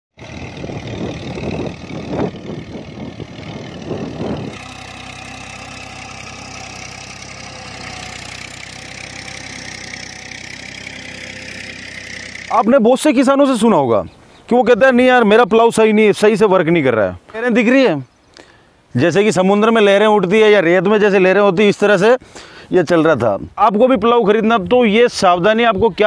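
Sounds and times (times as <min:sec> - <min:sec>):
tractor diesel engine under load: 0:00.2 - 0:13.4.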